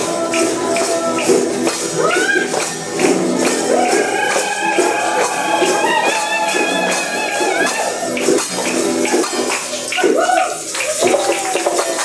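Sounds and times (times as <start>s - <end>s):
strummed acoustic guitar: 0.0s - 9.9s
maracas shaking: 0.0s - 12.0s
voices: 1.9s - 8.3s.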